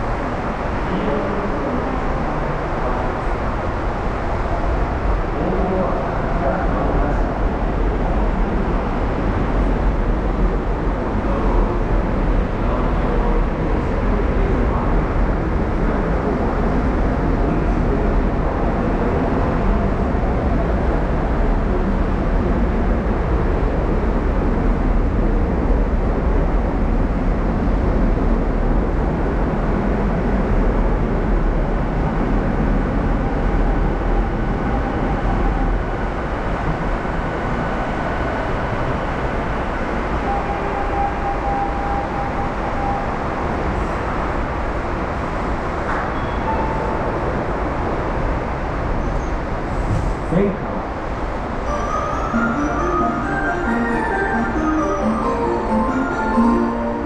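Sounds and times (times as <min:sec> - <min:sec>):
subway train rumble: 0:00.0 - 0:57.0.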